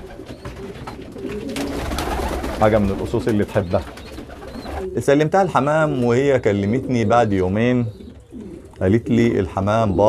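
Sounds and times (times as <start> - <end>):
pigeons cooing: 0.0 - 10.0.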